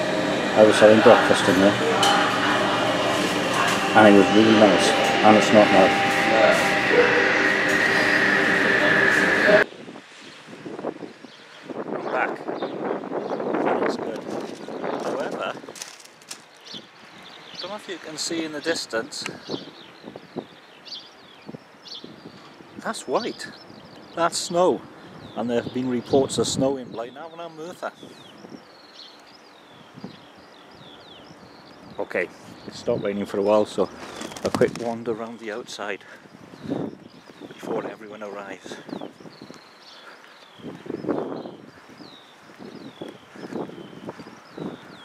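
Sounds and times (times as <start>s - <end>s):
wind on microphone: 0.0s - 17.6s, 19.2s - 24.2s, 27.9s - 28.7s, 29.7s - 33.2s, 36.1s - 39.8s, 40.5s - 45.0s
open-air ambience: 0.0s - 45.0s
high bird chirps: 36.2s - 45.0s.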